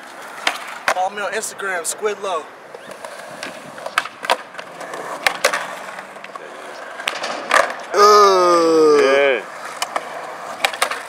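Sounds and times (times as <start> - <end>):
skateboard clacks: 0.0 - 1.6, 2.7 - 8.0, 8.9 - 11.0
skateboard wheels rolling on concrete: 0.0 - 11.0.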